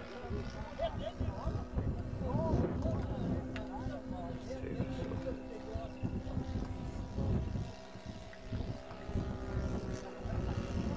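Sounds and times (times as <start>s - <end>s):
people talking: 0.0s - 7.5s, 9.0s - 10.9s
low hum: 0.0s - 10.9s
wind buffeting microphone: 0.0s - 10.9s.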